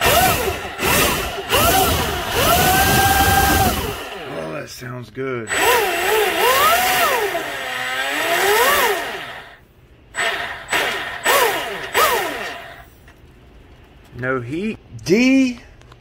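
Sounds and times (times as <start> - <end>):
motor whine revving: 0.0 - 4.5, 5.5 - 9.6, 10.2 - 12.8
person speaking: 4.2 - 5.6, 14.1 - 15.9.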